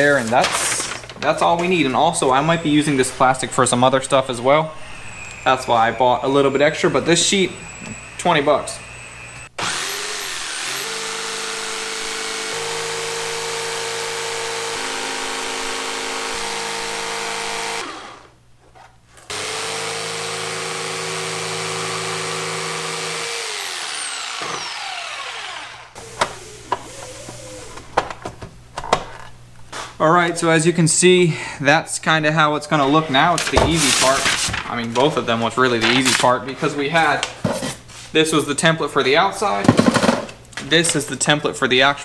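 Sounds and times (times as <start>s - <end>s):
jigsaw cutting plastic: 9.6s - 18.3s, 19.3s - 27.8s.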